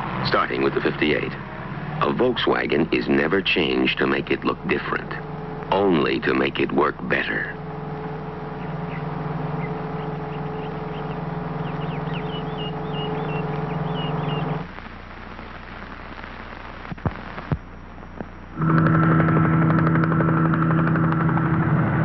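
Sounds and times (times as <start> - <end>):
steady engine drone: 0.0 - 22.0
sharp clicks: 16.9 - 21.7.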